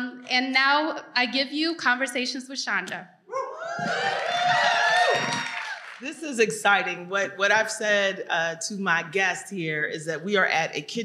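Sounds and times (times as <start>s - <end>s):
whoops: 3.3s - 6.0s
audience applauding and cheering: 3.5s - 6.2s.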